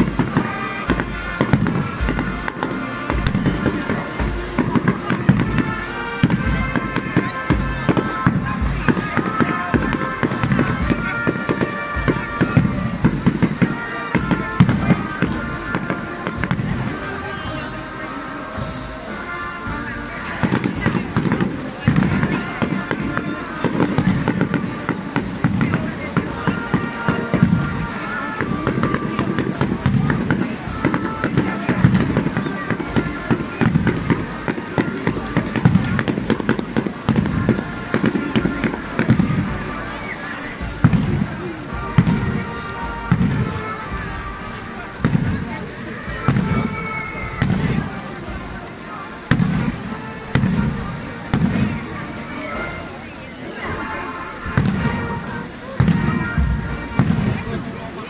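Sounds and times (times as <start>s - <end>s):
crackle of sharp bangs: 0.0s - 17.1s, 20.4s - 39.8s, 40.6s - 45.5s, 46.1s - 52.0s, 54.5s - 57.7s
bass drum beat: 0.0s - 17.7s
brass marching band: 0.0s - 58.0s.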